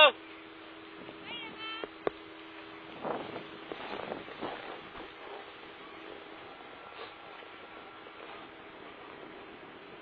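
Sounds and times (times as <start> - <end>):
wind on microphone: 0.4 - 10.0
skis scraping over snow: 3.0 - 10.0.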